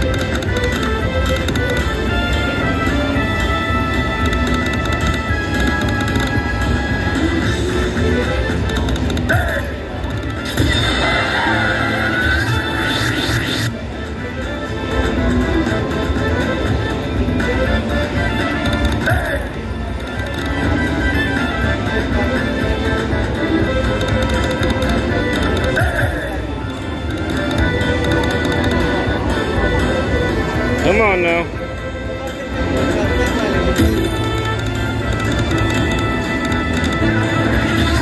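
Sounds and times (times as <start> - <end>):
slot machine looping tune: 0.0 - 12.6, 15.1 - 38.0.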